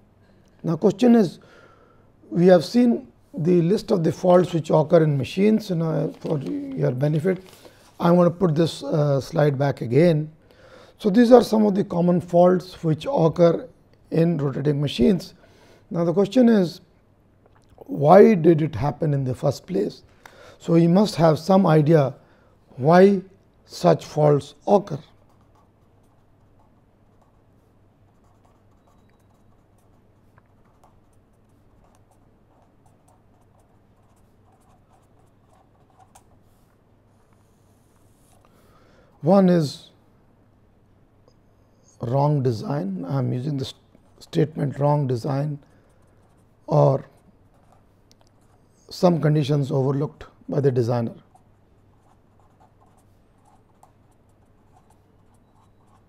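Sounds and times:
low room hum: 0.0 - 56.0
marker pen scratching on paper: 24.8 - 38.5, 45.7 - 48.8, 50.7 - 56.0
felt-tip marker scratching on paper: 51.2 - 56.0.

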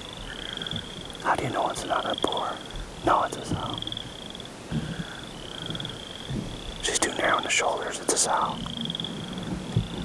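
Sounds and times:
faint whispered speech: 1.2 - 3.8, 6.8 - 8.7.

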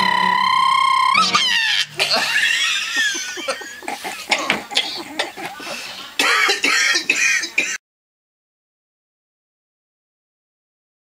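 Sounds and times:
person clearing throat: 3.5 - 7.8.

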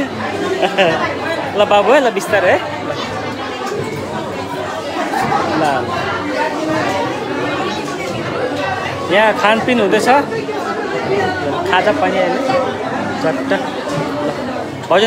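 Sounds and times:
overlapping chatter: 0.0 - 15.0.

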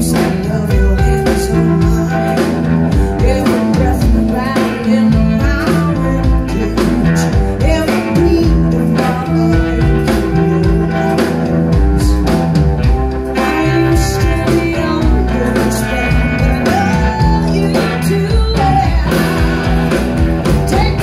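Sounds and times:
blues band playing: 0.0 - 21.0
drum kit beat: 0.0 - 21.0
guitar: 0.0 - 21.0.

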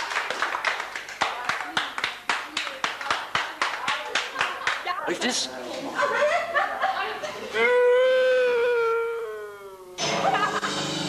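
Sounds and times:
wailing voice: 7.5 - 10.0.

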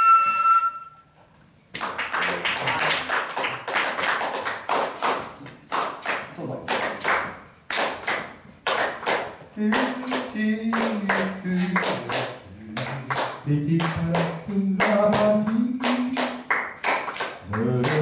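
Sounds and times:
held flute note: 0.0 - 1.2
hands clapping a rhythm: 1.6 - 18.0
high metallic jingling: 7.4 - 18.0.

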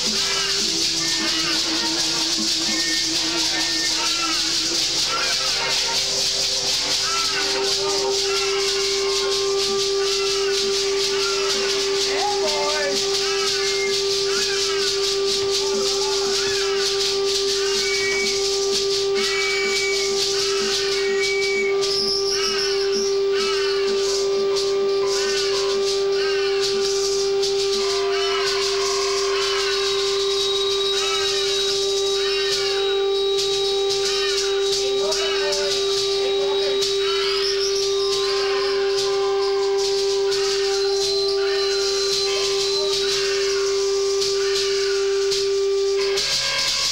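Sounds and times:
high rattling hiss: 0.0 - 46.9
steady droning note: 0.0 - 46.9.

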